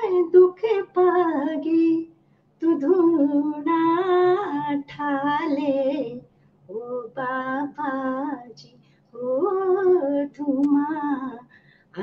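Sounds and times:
woman singing folk song: 0.0s - 12.0s.

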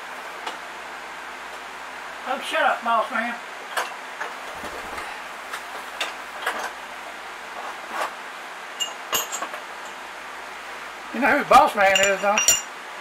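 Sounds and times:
metal tools knocking and clicking: 8.8s - 10.0s, 11.9s - 12.7s.

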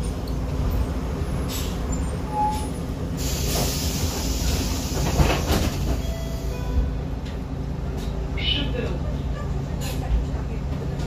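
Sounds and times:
bus diesel engine running: 0.0s - 11.0s
compressed-air hiss: 3.2s - 5.3s.

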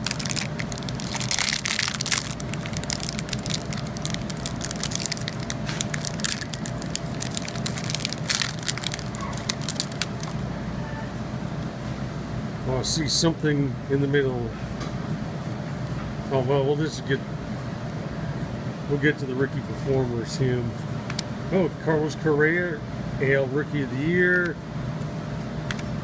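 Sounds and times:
foil wrapper crinkling and tearing: 0.0s - 10.4s.

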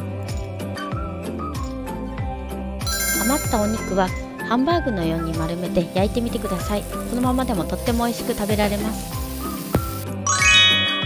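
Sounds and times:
sparkly chime sound effect: 2.8s - 4.3s, 10.2s - 11.0s
frying sizzle: 5.2s - 10.1s
background music with beat: 5.3s - 11.0s.

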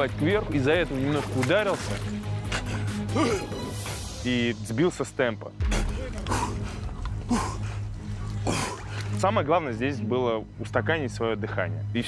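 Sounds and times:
man gasping for breath: 5.6s - 9.2s.

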